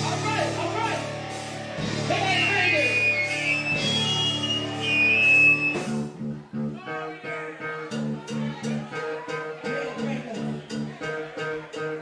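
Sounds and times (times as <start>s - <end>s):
live rock band playing: 0.0s - 12.0s.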